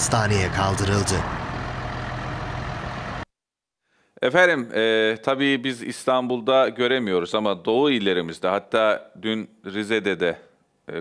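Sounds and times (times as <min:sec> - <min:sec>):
traffic: 0:00.0 - 0:03.2
truck engine rumbling: 0:00.0 - 0:03.2.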